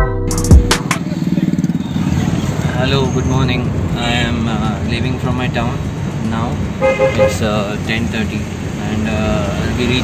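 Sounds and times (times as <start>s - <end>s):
car engine and road rumble: 0.3s - 10.0s.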